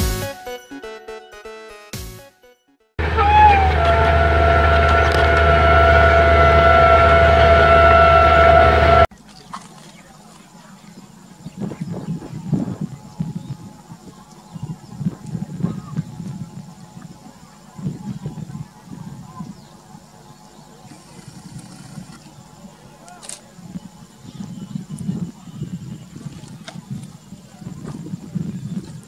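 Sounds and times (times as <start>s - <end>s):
locomotive horn blast: 3.0s - 9.1s
low rumble of train: 3.0s - 9.1s
faint voices: 3.0s - 29.0s.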